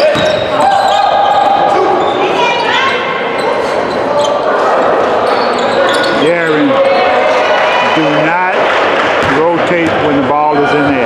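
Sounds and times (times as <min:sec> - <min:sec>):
basketball bouncing on court: 0:00.0 - 0:00.9, 0:09.2 - 0:11.0
sneakers squeaking: 0:00.0 - 0:06.8
murmur of voices: 0:00.0 - 0:11.0.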